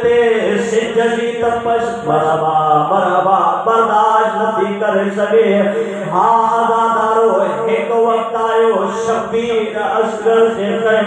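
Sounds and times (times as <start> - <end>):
man chanting a lament: 0.0 - 11.0.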